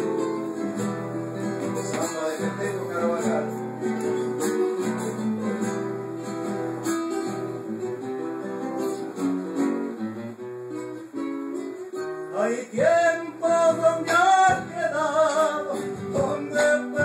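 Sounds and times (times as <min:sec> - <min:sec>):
classical guitars playing: 0:00.0 - 0:17.0.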